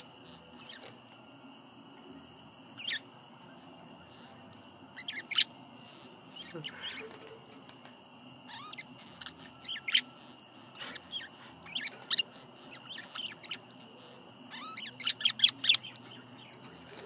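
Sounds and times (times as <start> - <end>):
budgerigars chirping: 0.0 - 1.0, 2.7 - 7.3, 8.4 - 17.0.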